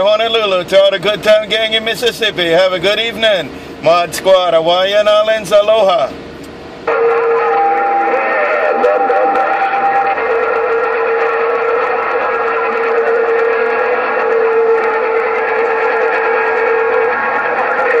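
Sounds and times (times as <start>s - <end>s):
radio static hiss: 6.8s - 18.0s
steady whistle: 6.9s - 18.0s.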